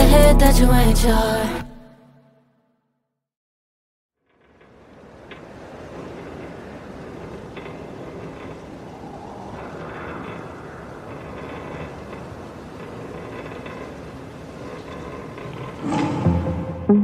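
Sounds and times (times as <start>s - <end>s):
quiet rumbling noise: 4.3s - 16.9s.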